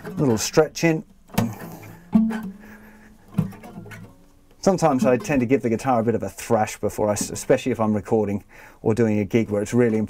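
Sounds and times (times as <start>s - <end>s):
acoustic guitar strings twanging: 0.0s - 6.1s.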